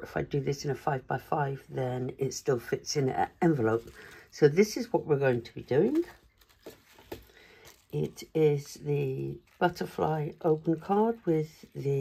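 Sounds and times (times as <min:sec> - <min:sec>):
paper card rustling: 0:03.5 - 0:08.2.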